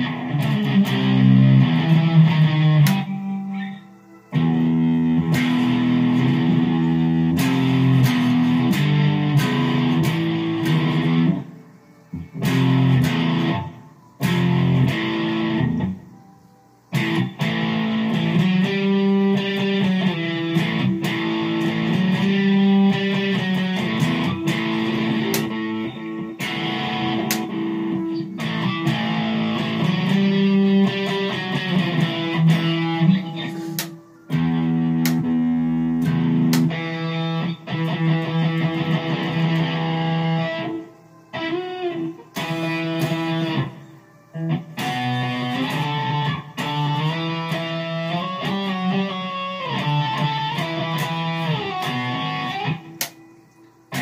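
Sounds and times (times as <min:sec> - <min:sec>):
electric guitar playing low riffs: 0:00.0 - 0:11.6, 0:12.2 - 0:16.2, 0:16.9 - 0:43.8, 0:44.4 - 0:53.2.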